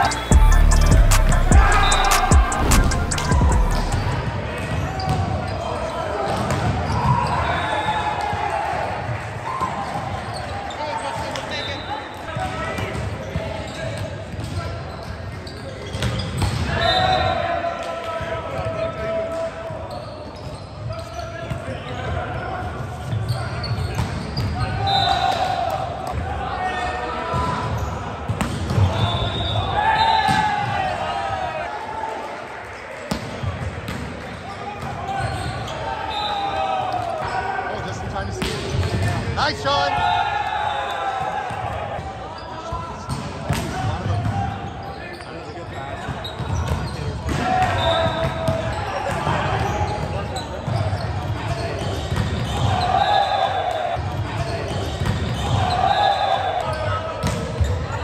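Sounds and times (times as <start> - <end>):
music: 0.0 - 4.2
players shouting: 0.0 - 13.7, 24.6 - 33.1, 34.5 - 44.9, 45.6 - 58.0.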